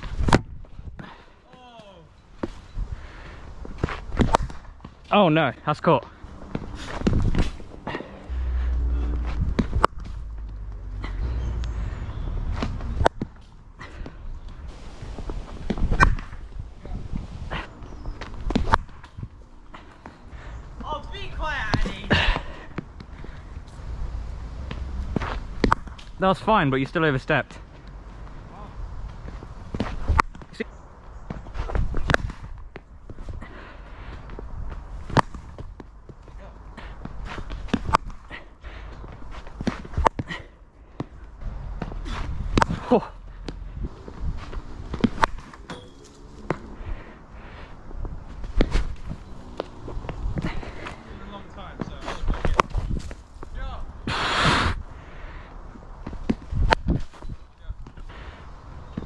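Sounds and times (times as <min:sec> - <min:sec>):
cricket ball hitting bat and net: 0:00.0 - 0:00.7, 0:03.8 - 0:05.0, 0:15.6 - 0:17.0, 0:18.2 - 0:19.2, 0:24.7 - 0:26.2, 0:29.7 - 0:30.6, 0:31.3 - 0:33.3, 0:35.0 - 0:35.9, 0:37.1 - 0:38.2, 0:39.3 - 0:40.4, 0:41.7 - 0:46.8, 0:48.4 - 0:51.0, 0:51.8 - 0:53.2
footsteps: 0:02.4 - 0:26.6, 0:31.2 - 0:53.6
brief hiss: 0:54.1 - 0:54.8.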